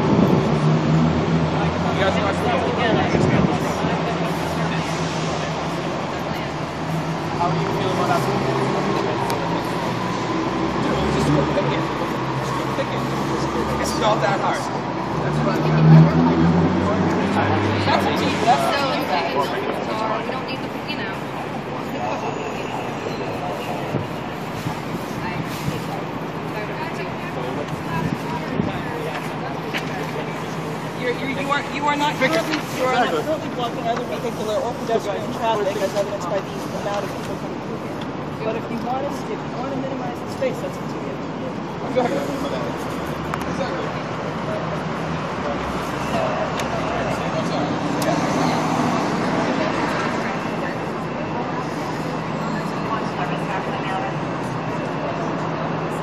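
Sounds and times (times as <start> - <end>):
faint voices: 0.0 - 56.0
traffic rumble: 0.0 - 56.0.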